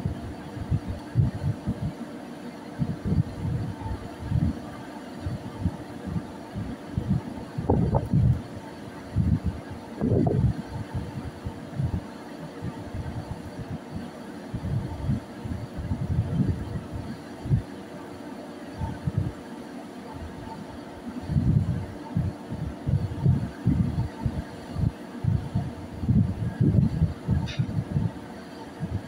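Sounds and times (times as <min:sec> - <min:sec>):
wind buffeting microphone: 0:00.0 - 0:01.9, 0:02.8 - 0:17.7, 0:21.2 - 0:29.0.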